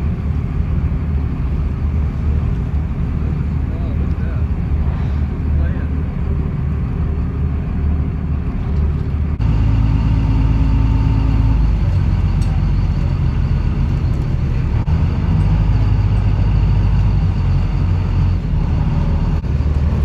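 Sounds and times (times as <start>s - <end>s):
boat engine humming: 0.0s - 20.0s.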